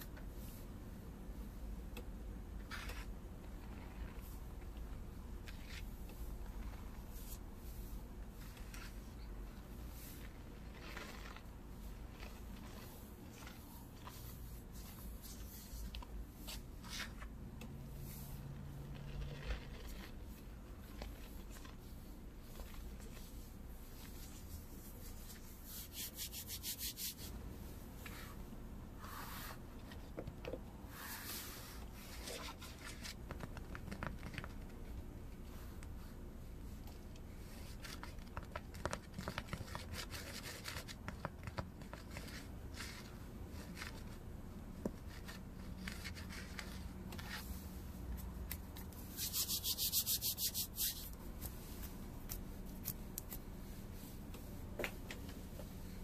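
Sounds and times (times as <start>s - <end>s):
fingers scraping dry powder: 9.9s - 17.2s, 49.2s - 51.6s
hands rubbing together: 24.0s - 27.3s, 48.2s - 53.4s.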